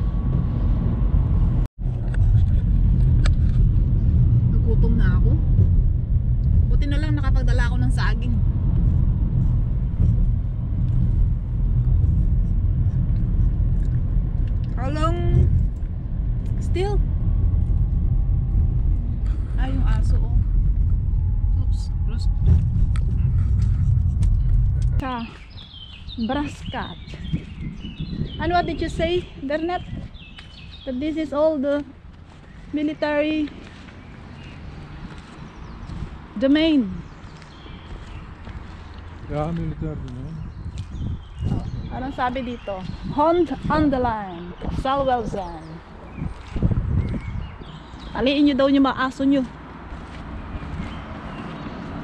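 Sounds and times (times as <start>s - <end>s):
car rumble inside cabin: 0.0s - 25.3s.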